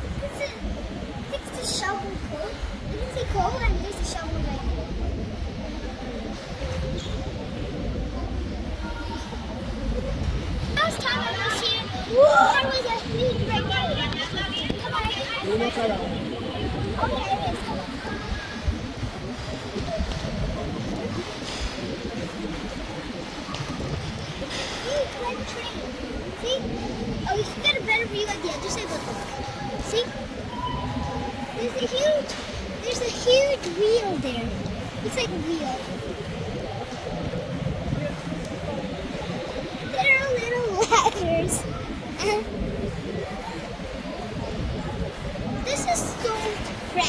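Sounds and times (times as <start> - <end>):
indistinct talking: 0.0 - 47.0
murmur of distant voices: 0.0 - 47.0
steady low rumble: 0.0 - 47.0.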